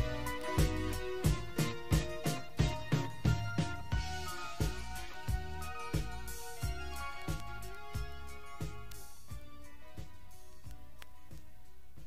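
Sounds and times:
instrumental pop music from vinyl: 0.0s - 12.0s.

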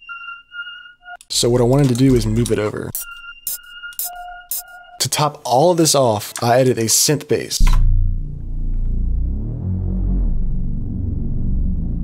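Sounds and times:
low synth bass: 7.6s - 12.0s.

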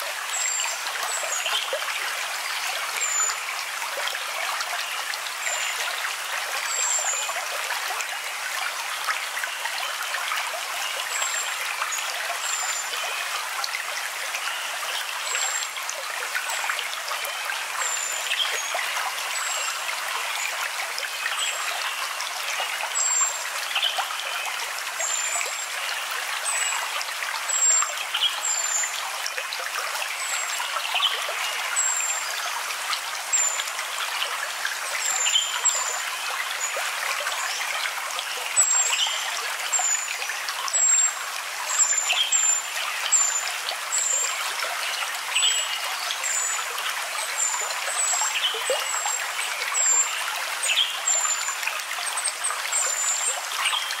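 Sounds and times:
small stream trickling: 0.0s - 54.0s.

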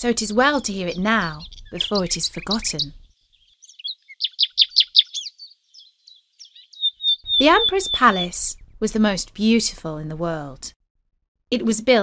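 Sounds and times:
songbird chirping: 0.0s - 10.3s.

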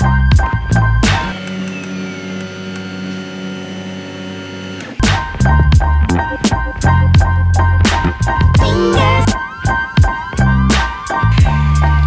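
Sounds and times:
printer stepper motors whining: 1.3s - 5.0s.

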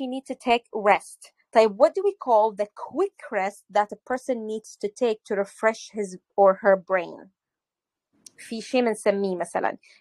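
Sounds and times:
person talking: 0.0s - 7.2s, 8.3s - 9.8s.

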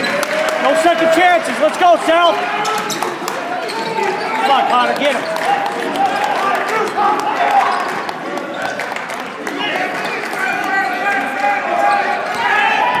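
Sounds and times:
spectators shouting and talking: 0.0s - 13.0s.

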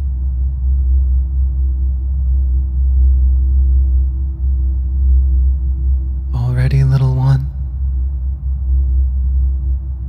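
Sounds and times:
low humming drone: 0.0s - 10.0s.

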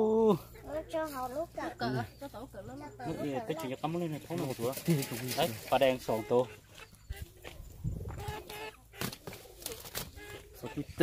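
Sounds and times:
chickens clucking: 0.1s - 11.0s.

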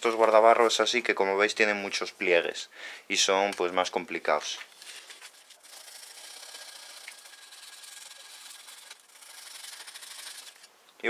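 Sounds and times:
foil rubbing on metal: 5.0s - 10.7s.

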